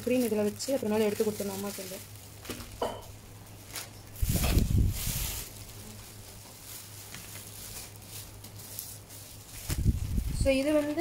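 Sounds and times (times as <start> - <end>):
plastic bags rustling: 0.0 - 11.0.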